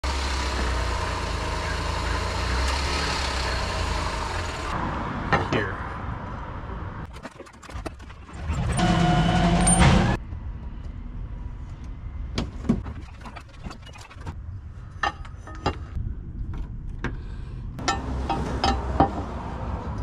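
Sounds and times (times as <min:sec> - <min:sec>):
vehicle engine rumbling: 0:00.0 - 0:20.0
metal plate clicks and knocks: 0:17.8 - 0:19.2.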